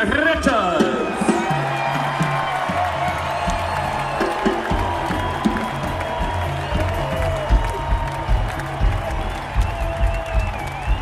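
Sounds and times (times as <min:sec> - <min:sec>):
crowd cheering: 0:00.0 - 0:11.0
live rock band: 0:00.0 - 0:11.0.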